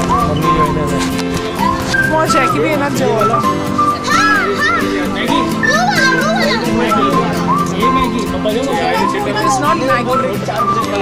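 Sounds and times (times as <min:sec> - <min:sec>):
children calling and chattering: 0:00.0 - 0:11.0
music with held notes: 0:00.0 - 0:11.0.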